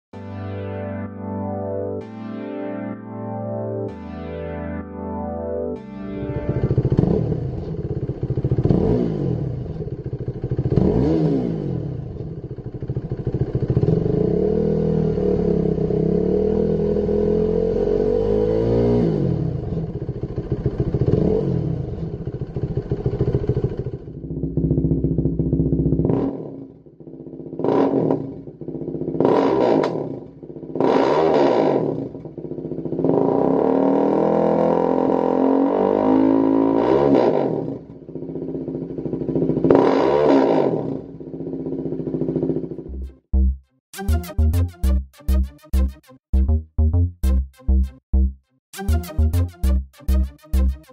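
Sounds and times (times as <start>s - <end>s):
motorcycle engine revving: 6.2s - 43.5s.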